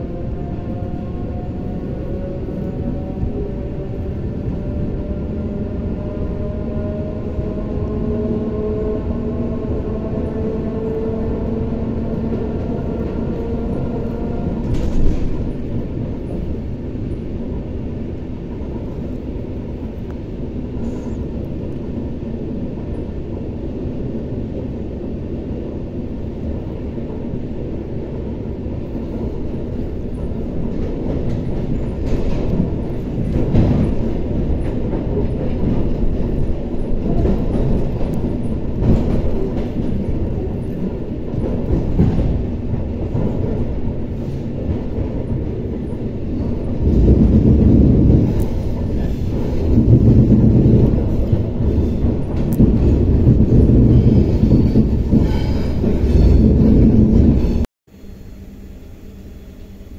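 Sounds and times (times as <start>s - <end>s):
train wheels rumbling: 0.0s - 57.7s.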